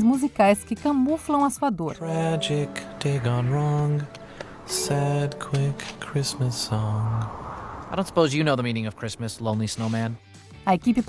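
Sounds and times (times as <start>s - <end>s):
man singing: 2.0s - 7.1s
man speaking: 4.7s - 7.2s, 8.0s - 10.2s.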